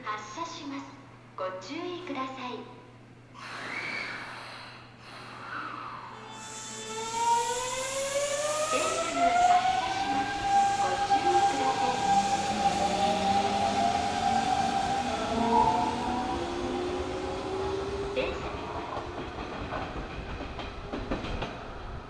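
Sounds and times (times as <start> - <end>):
electric train motors whining: 5.7 - 19.1
train wheels on rails: 7.0 - 22.0.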